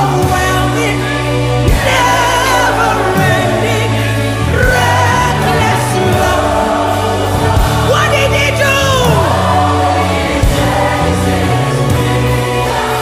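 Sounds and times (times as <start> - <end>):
band bass and keyboard chords: 0.0 - 13.0
congregation singing worship song: 0.0 - 13.0.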